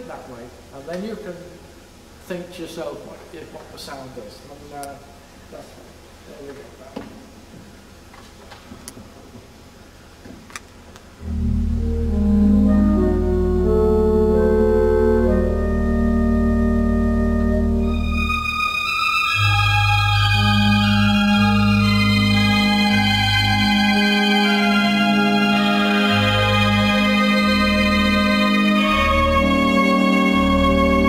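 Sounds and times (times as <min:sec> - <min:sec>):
pipe organ playing chords: 0:11.2 - 0:31.0.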